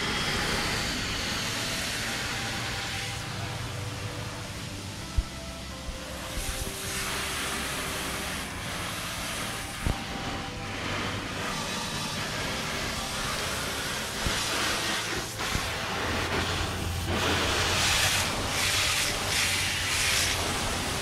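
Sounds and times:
garden hose spray hissing: 0.0 - 21.0.

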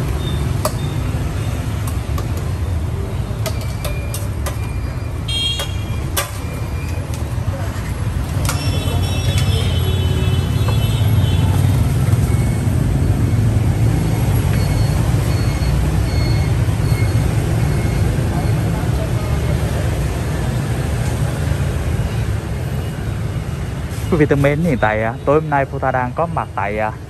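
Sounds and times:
motorbike and car traffic: 0.0 - 27.0.

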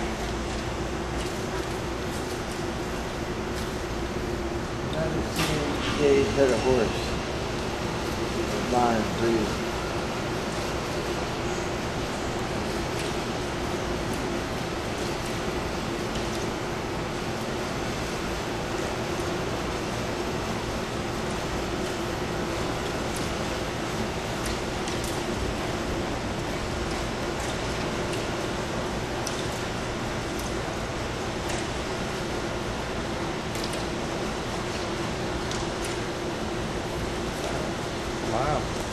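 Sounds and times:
steady machine hum and hiss: 0.0 - 38.9.

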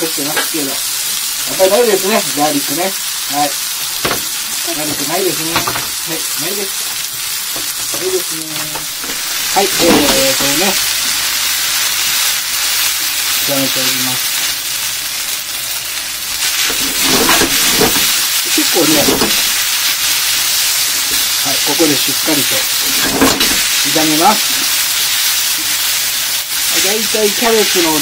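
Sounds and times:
food sizzling in a frying pan: 0.0 - 28.0.

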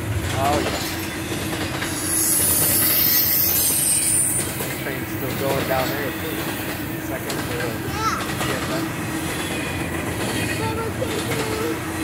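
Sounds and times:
freight train wheels rumbling on rail: 0.0 - 12.0
high-pitched wheel squeal: 1.9 - 4.6.

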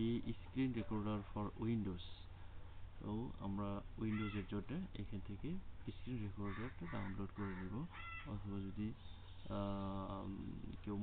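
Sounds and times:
narrator speaking: 0.0 - 2.3, 3.0 - 11.0
steady low hum: 0.0 - 11.0.

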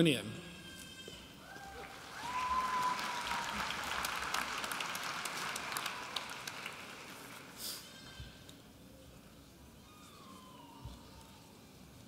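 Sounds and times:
audience applauding: 1.6 - 7.6.

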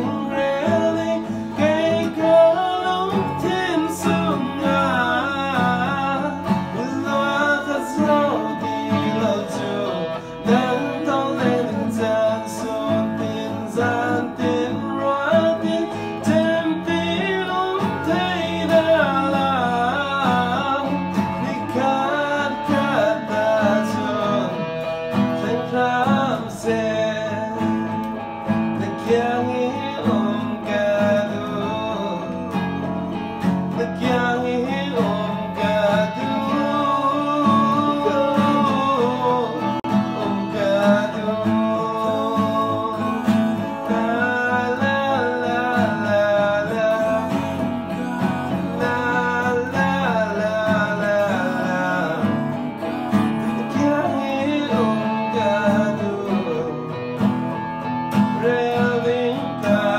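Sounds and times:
electric guitar: 0.0 - 59.9
man singing: 0.0 - 59.9
strummed acoustic guitar: 0.0 - 59.9.

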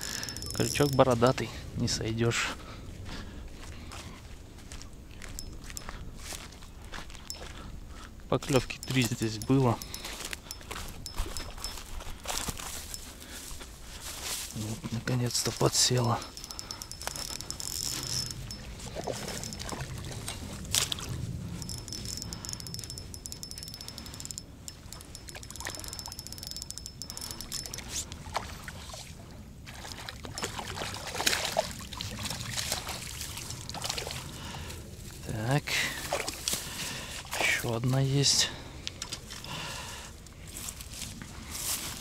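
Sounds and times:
fishing reel whirring: 0.0 - 1.2, 5.4 - 5.8, 8.6 - 13.1, 15.4 - 21.0, 21.6 - 28.0
fishing rod knocks: 15.4 - 19.9, 21.6 - 27.9
water splashing: 29.7 - 34.3.

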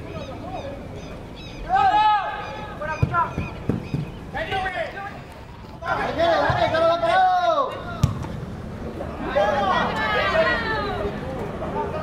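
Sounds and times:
players shouting: 1.6 - 8.4, 9.0 - 12.0.

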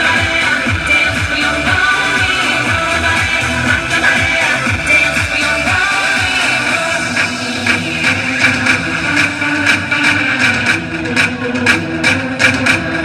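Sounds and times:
dance music over loudspeakers: 0.0 - 13.0.

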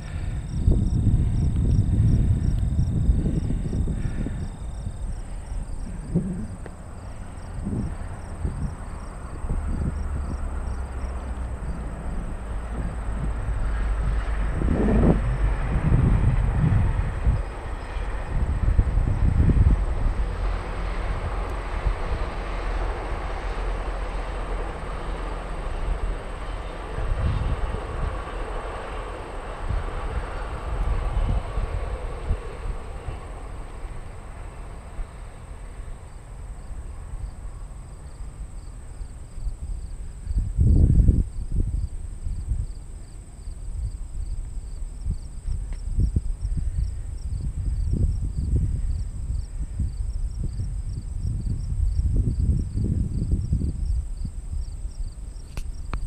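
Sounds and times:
distant rumbling: 0.0 - 43.4
crickets chirping: 0.0 - 56.0
wind buffeting microphone: 0.0 - 56.0.

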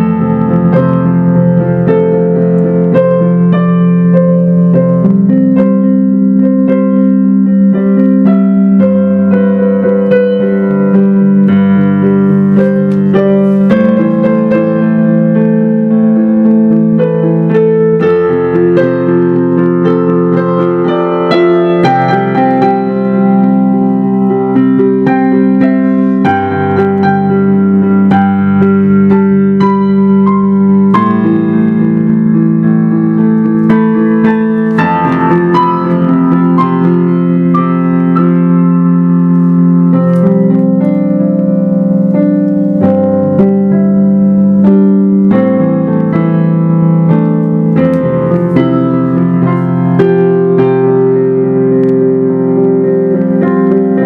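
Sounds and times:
digital piano playing: 0.0 - 54.0.

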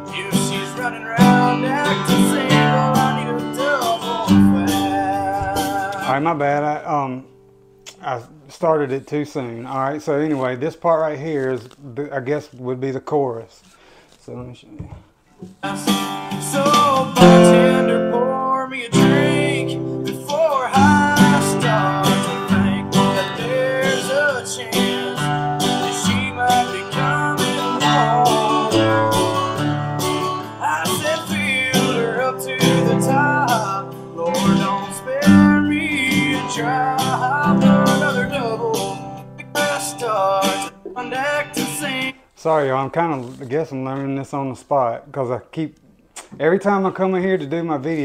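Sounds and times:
man singing: 0.0 - 7.3, 15.6 - 42.7
acoustic guitar strumming chords: 0.0 - 8.1, 15.4 - 42.3.

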